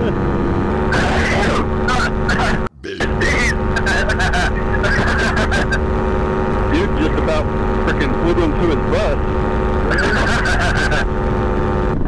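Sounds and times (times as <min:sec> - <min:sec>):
paramotor engine droning: 0:00.0 - 0:12.0
person laughing: 0:03.9 - 0:05.8, 0:09.9 - 0:11.0.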